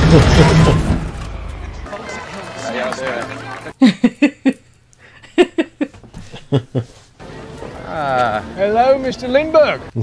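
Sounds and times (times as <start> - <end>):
person laughing: 3.8 - 7.0.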